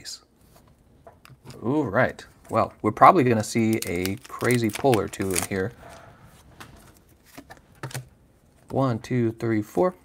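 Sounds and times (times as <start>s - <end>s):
cards clicking and rustling: 3.5s - 5.8s.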